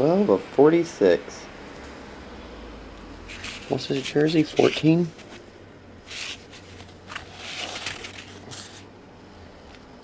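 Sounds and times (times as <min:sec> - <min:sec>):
cards rustling and scraping: 0:03.2 - 0:08.9.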